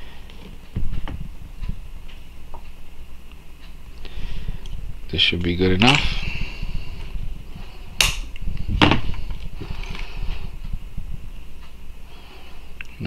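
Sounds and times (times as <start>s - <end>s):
cutters snapping metal rod: 8.0s - 8.3s.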